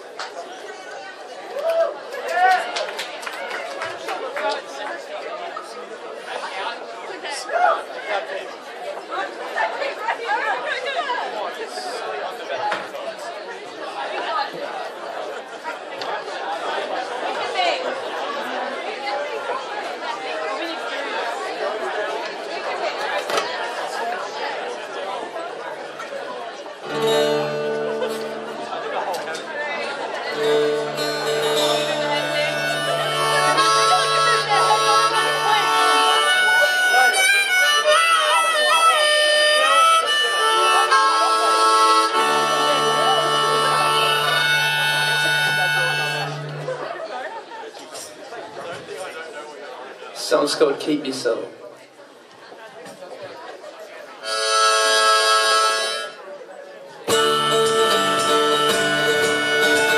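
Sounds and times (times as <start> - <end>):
audience chatter: 0.0 - 59.9
harmonica playing: 26.8 - 29.1, 30.3 - 46.9, 54.2 - 56.2, 57.1 - 59.9.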